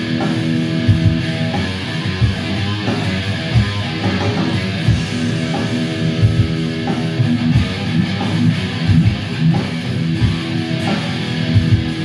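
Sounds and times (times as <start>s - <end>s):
electric guitar playing: 0.0s - 12.0s.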